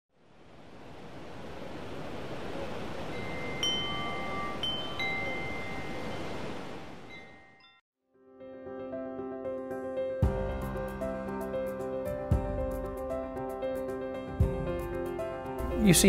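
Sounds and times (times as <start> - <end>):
wind chimes ringing: 3.1 - 7.8.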